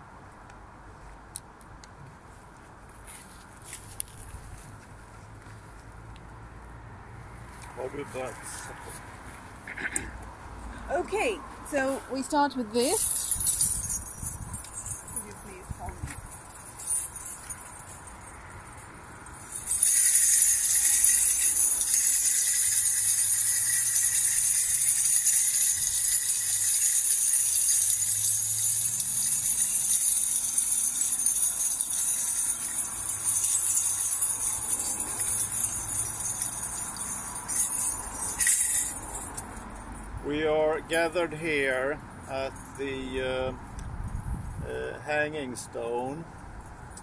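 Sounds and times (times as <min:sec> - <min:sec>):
hand bells jingling: 0:11.7 - 0:40.1, 0:41.0 - 0:43.1.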